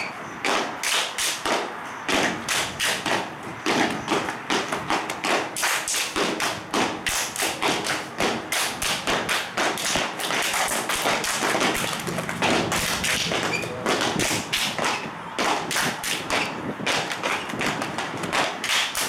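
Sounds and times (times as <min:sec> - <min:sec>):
sneaker stomps on concrete: 0:01.4 - 0:19.0.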